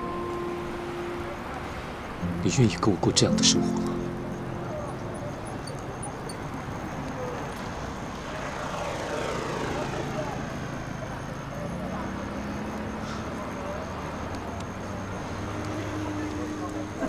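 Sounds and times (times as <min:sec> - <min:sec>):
traffic hum: 0:00.0 - 0:17.0
vehicle passing by: 0:04.5 - 0:14.2.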